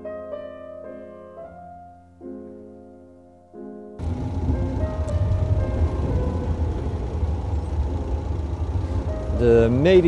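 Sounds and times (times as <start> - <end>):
road traffic rumble: 4.0 - 10.0.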